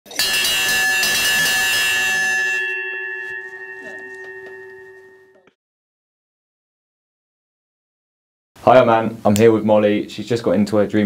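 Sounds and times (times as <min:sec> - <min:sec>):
ship's bell ringing: 0:00.1 - 0:05.6.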